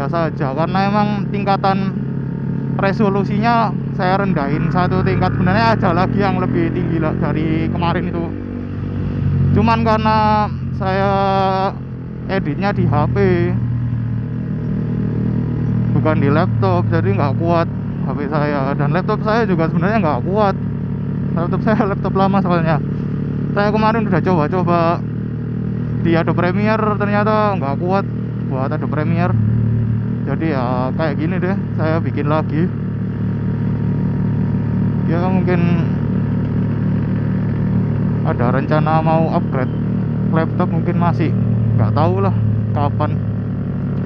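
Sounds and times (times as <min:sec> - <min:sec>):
motorcycle engine running: 0:00.0 - 0:44.0.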